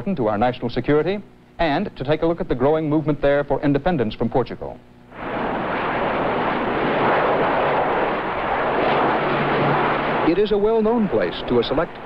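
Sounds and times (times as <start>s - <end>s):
low hum: 5.0s - 12.0s
jet plane passing low: 5.2s - 12.0s.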